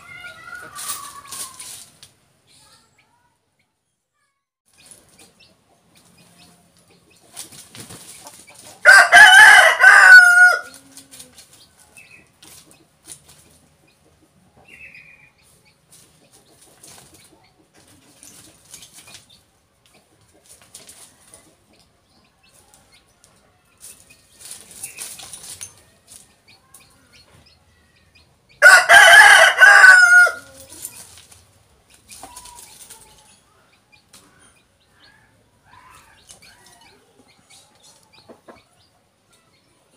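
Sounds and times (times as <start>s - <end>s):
rooster crowing: 8.8s - 10.8s, 28.6s - 30.6s.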